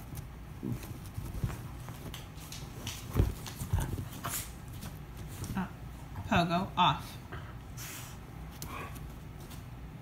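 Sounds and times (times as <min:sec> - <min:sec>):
dogs scuffling on couch cushions: 0:00.0 - 0:06.2.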